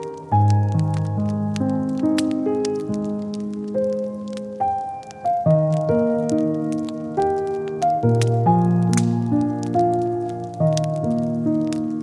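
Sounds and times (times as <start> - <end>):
fireplace crackling: 0.0 - 12.0
slow solo piano: 0.0 - 12.0.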